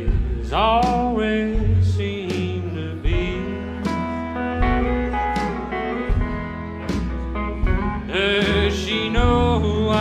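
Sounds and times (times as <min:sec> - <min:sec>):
country band playing: 0:00.0 - 0:10.0
drum hits: 0:00.0 - 0:10.0
pedal steel guitar: 0:02.4 - 0:10.0.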